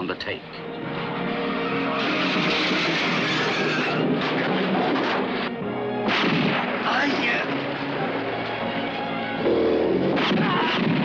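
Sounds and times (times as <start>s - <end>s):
background music: 0.0s - 11.0s
pistol gunshots with echo: 6.0s - 7.0s, 10.1s - 11.0s.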